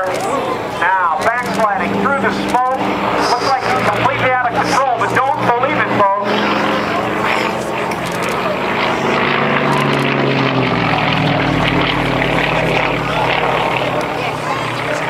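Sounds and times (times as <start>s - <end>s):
propeller plane engine droning: 0.0s - 15.0s.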